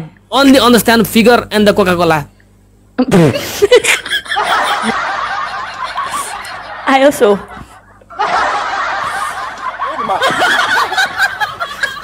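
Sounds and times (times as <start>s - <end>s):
laughter: 3.1s - 12.0s.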